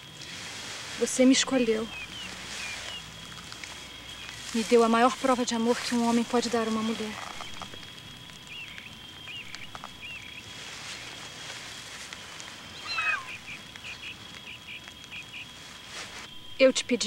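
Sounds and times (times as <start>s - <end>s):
birds chirping: 0.9s - 16.2s
bird call falling in pitch: 12.8s - 14.2s.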